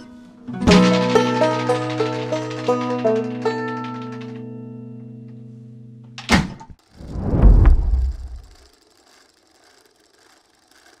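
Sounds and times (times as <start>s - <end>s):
deep low boom: 7.0s - 8.5s
faint crackly hiss: 8.1s - 11.0s.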